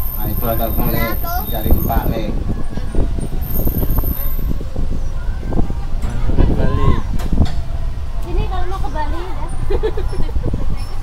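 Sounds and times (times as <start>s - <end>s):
bus engine and road rumble: 0.0s - 11.0s
people talking: 0.2s - 3.0s.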